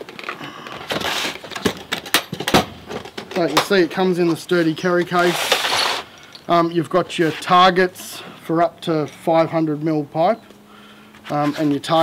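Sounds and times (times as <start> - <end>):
plastic case scraping on wood: 11.2 - 12.0.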